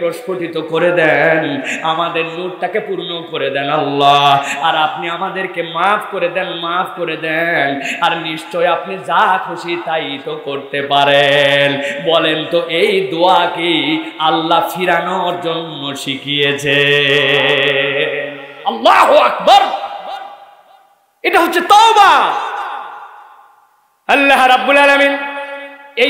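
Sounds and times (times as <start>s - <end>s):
man chanting through microphones: 0.0s - 20.2s
man shouting into microphone: 18.6s - 20.4s, 21.2s - 23.1s.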